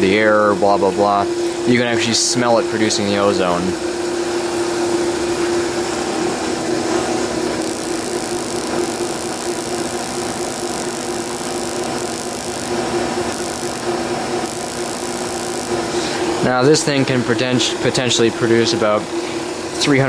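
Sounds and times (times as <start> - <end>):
generator motor humming: 6.6 - 16.6
small sparks hissing: 7.6 - 16.3.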